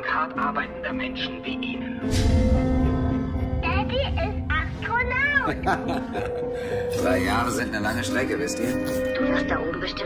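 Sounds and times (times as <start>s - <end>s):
background music steady note: 0.0s - 10.0s.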